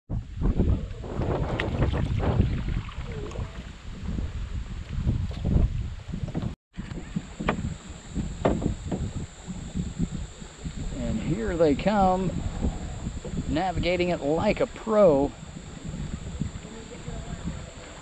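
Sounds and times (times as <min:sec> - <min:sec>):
wind buffeting microphone: 0:00.1 - 0:18.0
canoe paddling: 0:00.8 - 0:04.8, 0:06.2 - 0:18.0
water sounds: 0:00.8 - 0:04.9, 0:06.8 - 0:18.0
high insect buzz: 0:06.8 - 0:18.0
sharp knocks: 0:07.4 - 0:07.7, 0:08.4 - 0:09.6.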